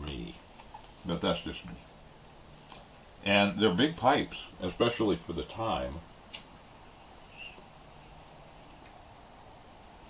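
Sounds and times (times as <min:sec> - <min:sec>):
sharp click: 0:06.3 - 0:06.5
faint high chirp: 0:07.2 - 0:08.1.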